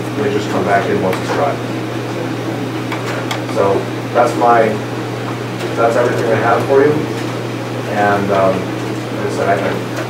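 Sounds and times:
man speaking: 0.0s - 1.7s, 3.5s - 4.9s, 5.8s - 7.1s, 7.9s - 10.0s.

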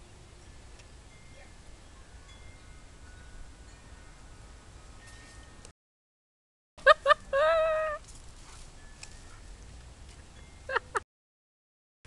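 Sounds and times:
wind chime tones: 0.0s - 5.7s, 8.0s - 11.0s.

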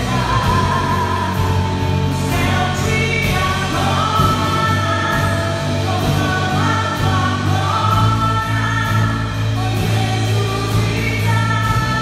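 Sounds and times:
backing voices singing: 0.0s - 12.0s
band with bass and percussion: 0.0s - 12.0s
woman singing into microphone: 0.0s - 12.0s.

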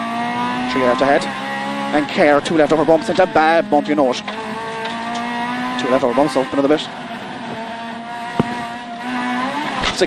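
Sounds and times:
car engine running at speed: 0.0s - 10.0s
car thumping over bump: 8.2s - 8.8s.

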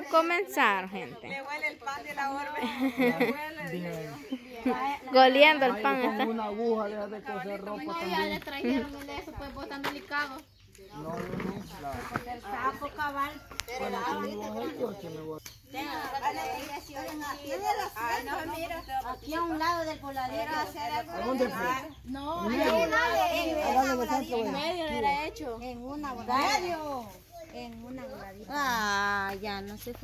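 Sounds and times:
group of people talking: 0.0s - 30.0s.

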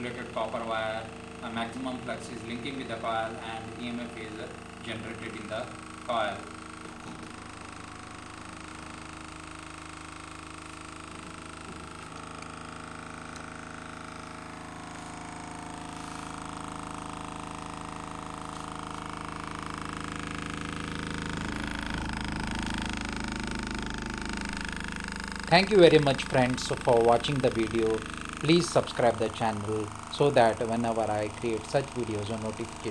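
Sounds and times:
small motor whirring hum: 0.0s - 32.9s.

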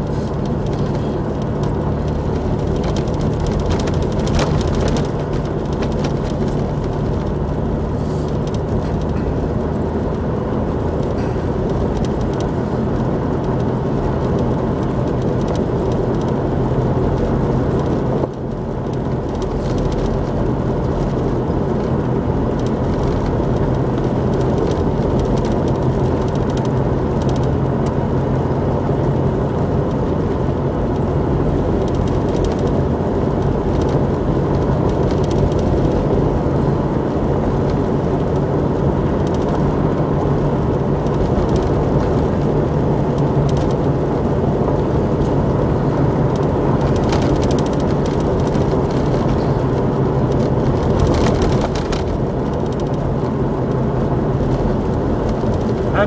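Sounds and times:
vehicle driving on gravel: 0.0s - 56.0s.

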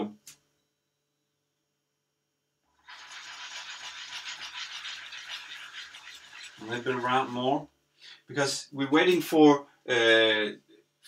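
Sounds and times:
egg sizzling in a frying pan: 2.8s - 7.6s.

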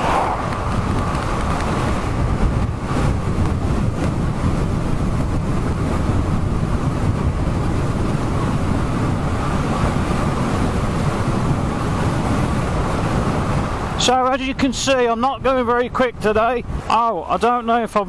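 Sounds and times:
bike tyre noise on road: 0.0s - 15.0s
wind on microphone: 0.0s - 18.0s.

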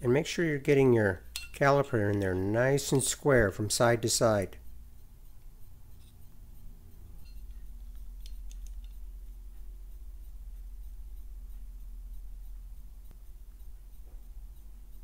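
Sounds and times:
steady low hum: 0.0s - 15.0s
light metallic clicks: 7.2s - 9.4s.

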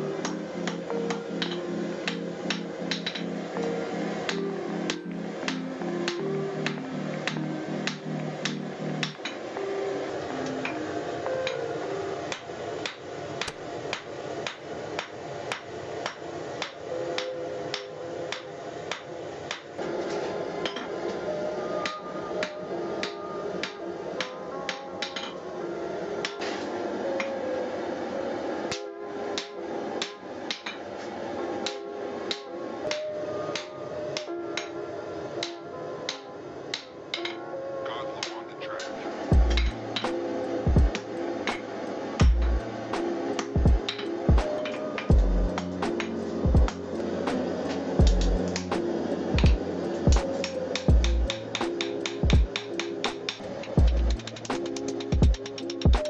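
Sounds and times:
hammer striking steel on anvil: 0.2s - 3.3s.

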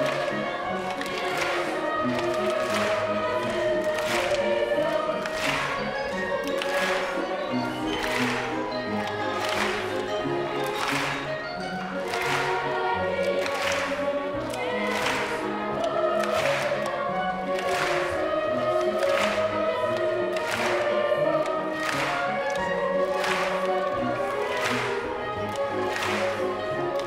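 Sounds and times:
audience clapping along: 0.0s - 27.0s
choir singing with accompaniment: 0.0s - 27.0s.

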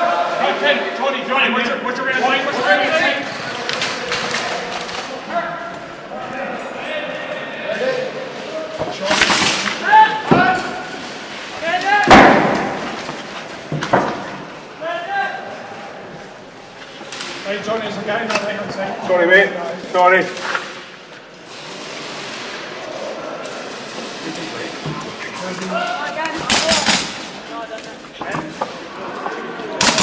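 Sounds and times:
players calling out in hall: 0.0s - 13.6s, 14.2s - 20.9s, 22.4s - 30.0s
sharp knocks or slams: 12.0s - 13.0s.

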